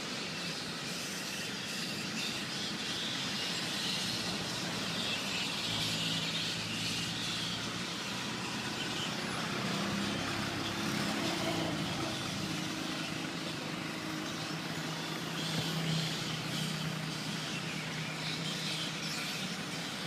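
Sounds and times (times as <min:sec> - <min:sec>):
traffic noise: 0:00.0 - 0:20.0
vehicle engines humming: 0:00.0 - 0:20.0.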